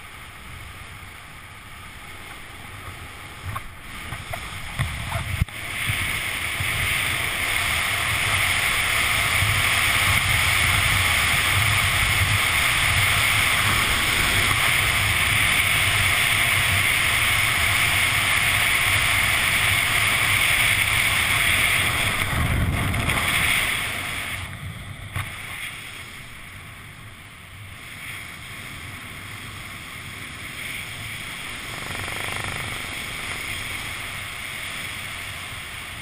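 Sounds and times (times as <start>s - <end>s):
wind rushing over microphone: 2.5s - 36.0s.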